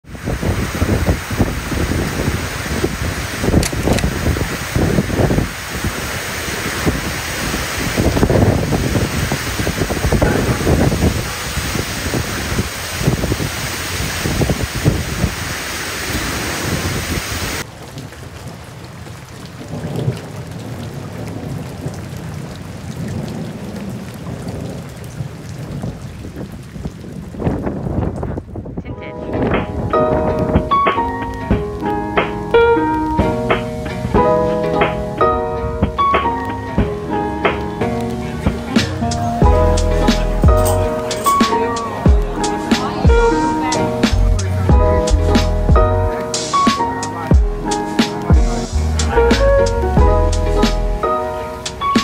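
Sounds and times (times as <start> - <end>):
heavy rain pouring: 0.0 - 52.0
low rumbles: 36.7 - 41.4, 42.0 - 46.2, 47.3 - 51.0.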